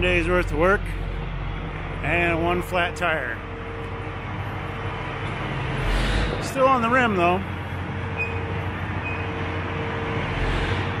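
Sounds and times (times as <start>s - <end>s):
tractor diesel engine idling: 0.0s - 11.0s.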